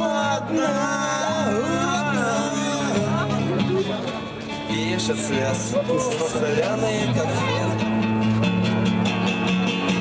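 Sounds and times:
strummed acoustic guitar: 0:00.0 - 0:10.0.

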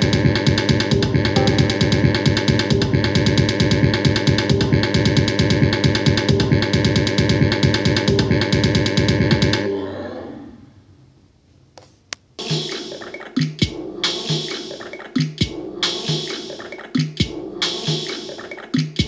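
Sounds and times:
repeating electronic beat loop: 0:01.4 - 0:02.6.

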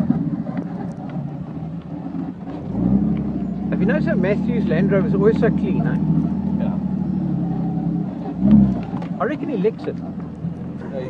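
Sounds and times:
car engine revving: 0:00.0 - 0:11.0.

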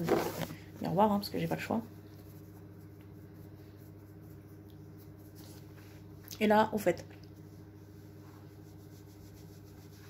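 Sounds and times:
makeup brush rubbing: 0:00.0 - 0:06.1, 0:07.4 - 0:10.0
steady low hum: 0:00.0 - 0:10.0.

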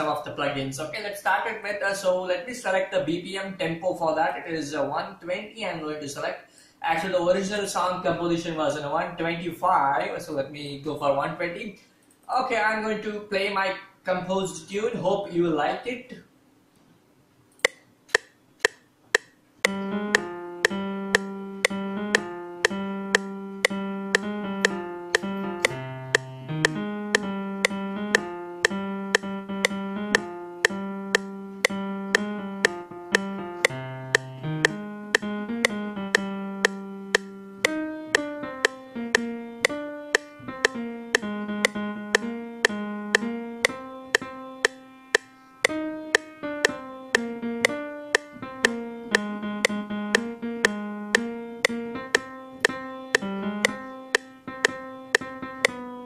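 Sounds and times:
metronome click: 0:17.6 - 0:56.0
keyboard melody: 0:19.6 - 0:56.0.

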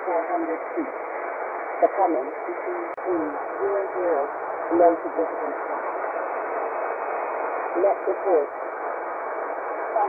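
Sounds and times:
shortwave radio static hiss: 0:00.0 - 0:10.0.

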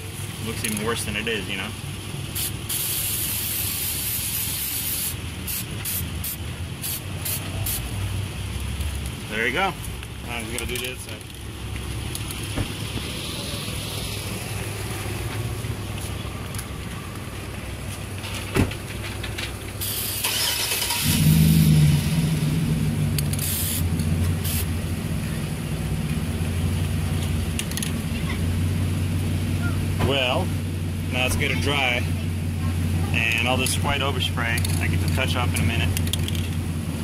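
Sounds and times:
aerosol spray can hissing: 0:02.4 - 0:07.8, 0:23.4 - 0:24.7
low engine drone: 0:10.0 - 0:37.0.

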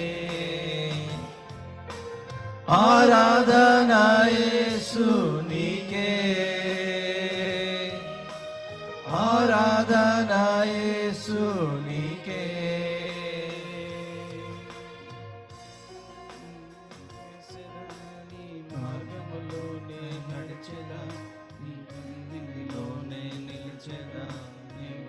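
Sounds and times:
man singing worship song: 0:00.0 - 0:01.6, 0:02.7 - 0:08.3, 0:09.0 - 0:15.0, 0:16.3 - 0:25.0
sustained instrumental backing: 0:00.0 - 0:25.0.

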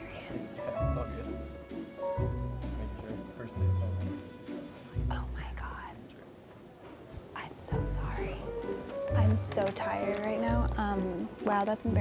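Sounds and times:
people talking quietly: 0:02.6 - 0:12.0.

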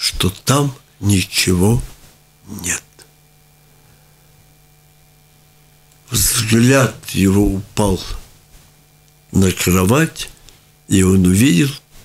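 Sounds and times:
faint low hum: 0:00.0 - 0:12.0
man saying a word: 0:02.5 - 0:03.0, 0:06.1 - 0:08.2.

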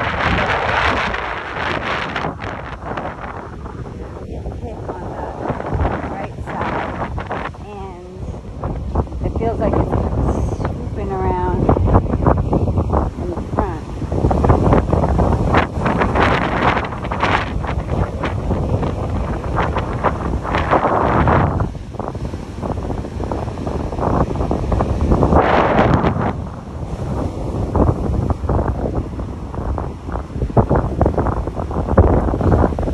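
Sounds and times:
storm wind buffeting microphone: 0:00.0 - 0:32.9
surf breaking on beach: 0:00.0 - 0:32.9.

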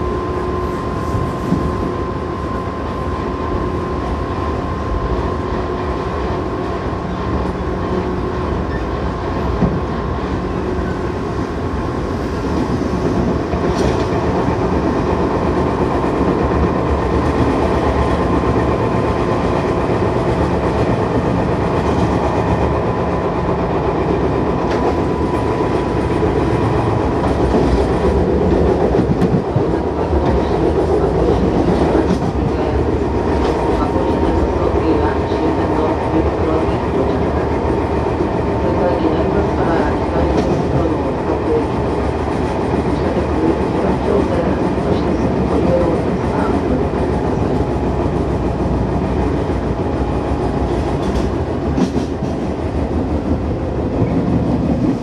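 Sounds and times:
train wheels rumbling on rail: 0:00.0 - 0:55.0.

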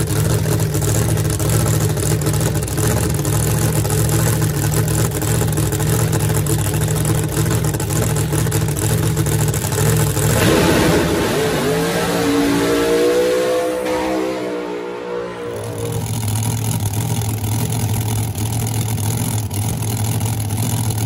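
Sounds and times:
race car engine accelerating: 0:00.0 - 0:21.0.

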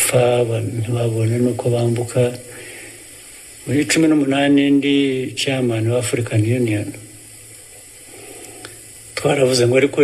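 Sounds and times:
steady hiss: 0:00.0 - 0:10.0
faint click: 0:02.0 - 0:02.5, 0:07.7 - 0:09.3.

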